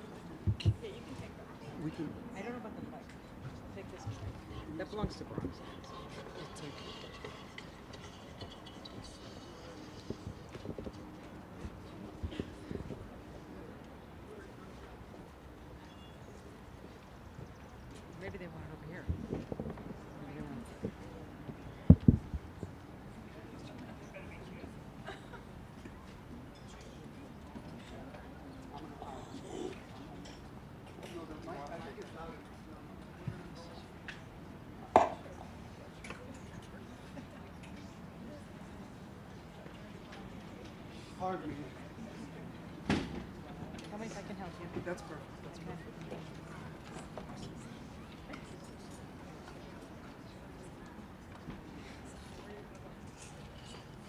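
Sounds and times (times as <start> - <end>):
low chatter of voices: 0.0 - 54.0.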